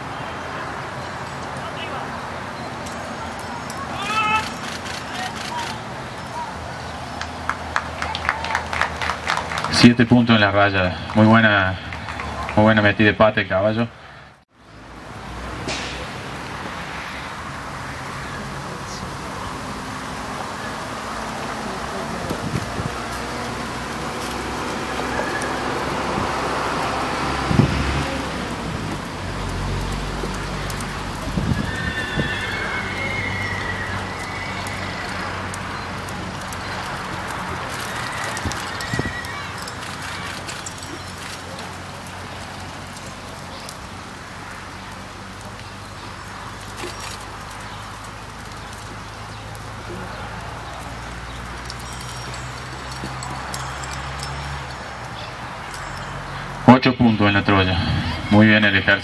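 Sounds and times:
outdoor background hiss: 0:12.7 - 0:59.0
hoofbeats on dirt: 0:20.2 - 0:56.3
horse whinny: 0:24.9 - 0:25.8, 0:31.3 - 0:35.6.

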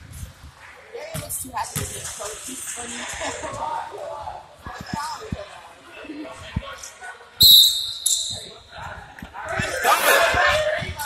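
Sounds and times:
high steady squeal: 0:07.4 - 0:08.6.

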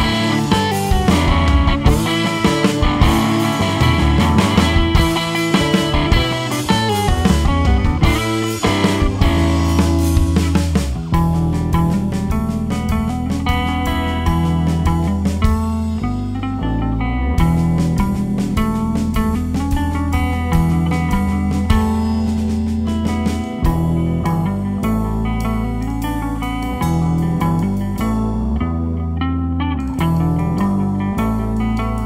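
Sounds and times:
drum kit: 0:00.0 - 0:29.0, 0:29.8 - 0:32.0
electric bass line: 0:00.0 - 0:32.0
electric guitar with chorus effect: 0:00.0 - 0:32.0.

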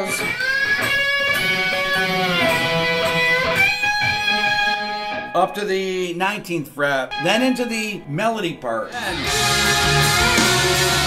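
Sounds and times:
slide electric guitar with delay: 0:00.0 - 0:06.1, 0:07.1 - 0:11.0.

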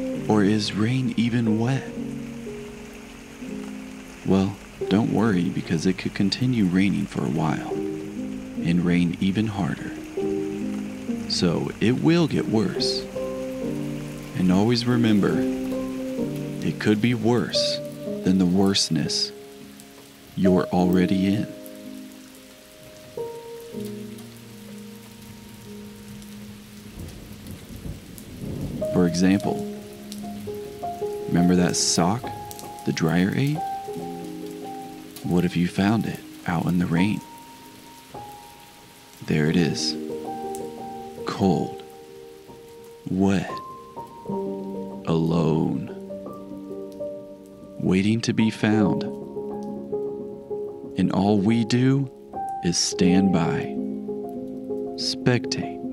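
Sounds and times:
rain falling into puddle: 0:00.0 - 0:47.1
soft background music: 0:00.0 - 0:55.9
person speaking: 0:00.2 - 0:02.0, 0:04.2 - 0:07.8, 0:08.6 - 0:10.1, 0:11.2 - 0:13.2, 0:14.3 - 0:15.6, 0:16.6 - 0:19.4, 0:20.3 - 0:21.7, 0:28.8 - 0:29.8, 0:31.2 - 0:33.7, 0:35.2 - 0:37.3, 0:39.2 - 0:40.1, 0:41.2 - 0:42.0, 0:43.0 - 0:43.7, 0:45.0 - 0:46.1, 0:47.7 - 0:49.3, 0:50.9 - 0:53.8, 0:55.0 - 0:55.9.

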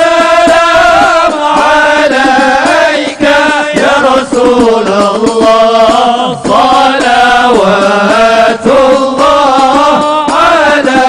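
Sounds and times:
person chanting a hymn: 0:00.0 - 0:11.0.

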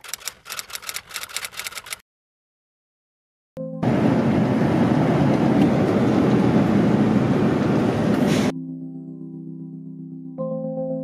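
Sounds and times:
bus road and engine noise: 0:03.8 - 0:08.5
soft synthesizer music: 0:08.5 - 0:11.0.

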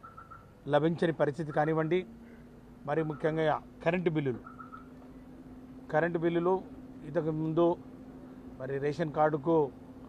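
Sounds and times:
man speaking: 0:00.6 - 0:02.1, 0:02.8 - 0:04.4, 0:05.9 - 0:07.8, 0:08.6 - 0:09.8.

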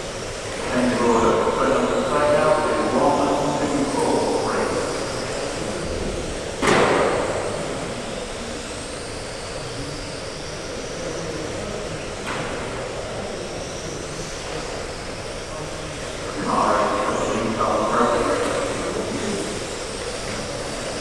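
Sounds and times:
electric motors whining: 0:00.0 - 0:21.0.

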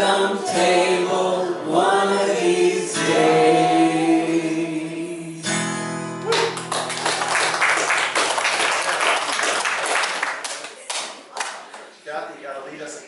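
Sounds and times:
worship song chord on guitar: 0:00.0 - 0:06.2
applause: 0:06.2 - 0:11.9.

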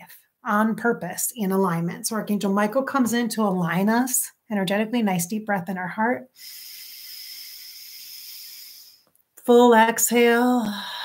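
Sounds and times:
person breathing in deeply: 0:06.3 - 0:09.0.

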